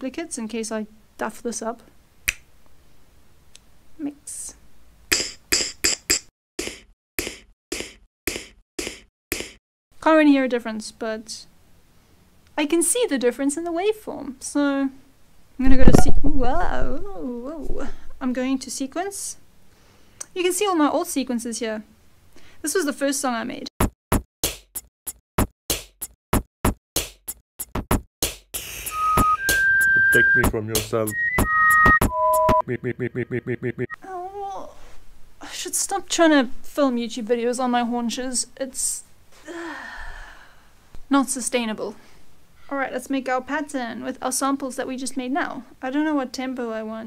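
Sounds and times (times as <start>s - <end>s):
snare and finger snap hits: 2.3s - 2.5s, 5.1s - 9.6s
drum machine beat: 5.1s - 9.6s, 23.8s - 34.0s.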